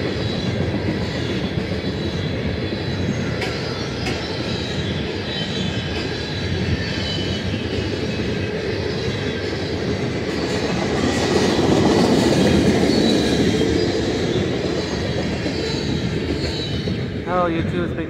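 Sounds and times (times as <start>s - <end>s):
train wheels rumbling on rail: 0.0s - 18.0s.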